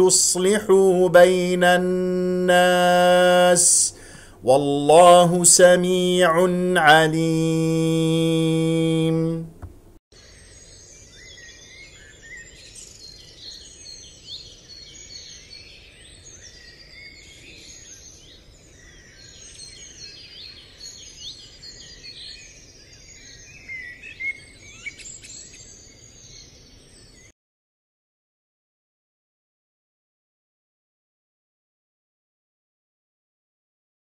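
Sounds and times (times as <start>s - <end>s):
songbirds chirping and trilling: 0.0s - 27.3s.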